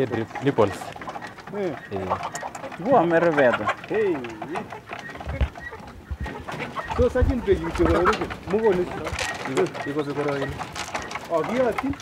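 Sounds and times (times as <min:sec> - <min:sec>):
doves cooing: 0:00.0 - 0:12.0.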